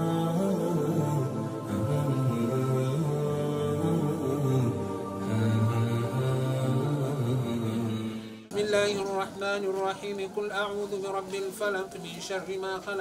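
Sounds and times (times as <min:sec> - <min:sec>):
men chanting a devotional hymn: 0:00.0 - 0:13.0.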